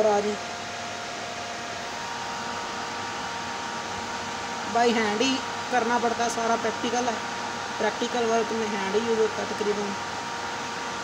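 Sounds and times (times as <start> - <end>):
incubator fan whirring: 0.0 - 11.0.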